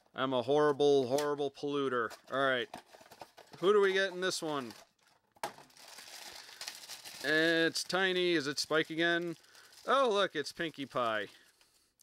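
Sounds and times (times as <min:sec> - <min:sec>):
plastic bag crinkling: 0:02.8 - 0:11.8.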